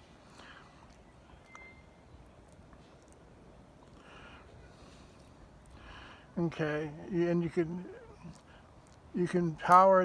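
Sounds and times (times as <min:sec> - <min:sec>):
short high chirp: 0:01.4 - 0:02.0.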